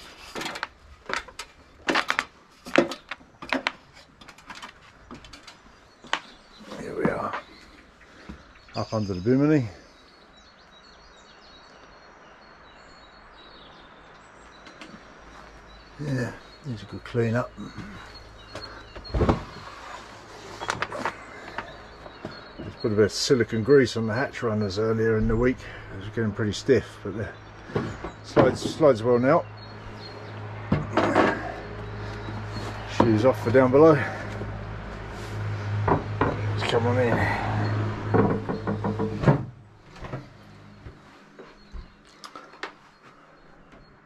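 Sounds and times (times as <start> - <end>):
faint birdsong: 0.0 - 44.0
wooden hatch sliding: 17.7 - 22.9, 35.2 - 41.1.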